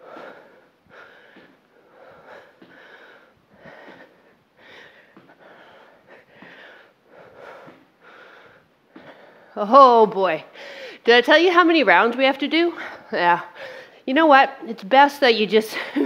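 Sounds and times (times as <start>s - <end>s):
woman breathing hard: 0.0s - 9.6s, 10.5s - 11.1s, 12.7s - 14.0s.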